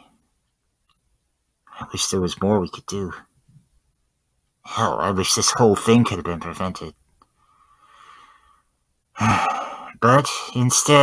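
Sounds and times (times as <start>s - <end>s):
faint intake of breath: 7.3s - 10.0s
person sighing heavily: 9.2s - 10.0s.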